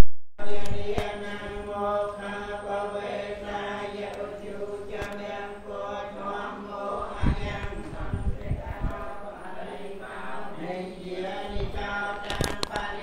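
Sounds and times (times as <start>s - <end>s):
voices chanting in held tones: 0.4s - 13.0s.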